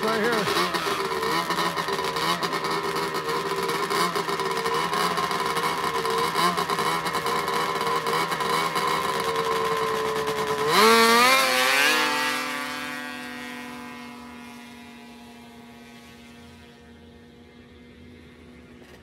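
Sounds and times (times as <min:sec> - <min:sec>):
snowmobile engines revving: 0:00.0 - 0:19.0.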